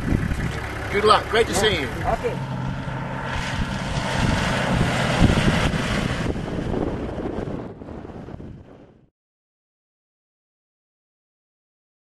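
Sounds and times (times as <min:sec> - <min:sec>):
vehicle driving past: 0:00.0 - 0:08.4
wind buffeting microphone: 0:00.0 - 0:09.1.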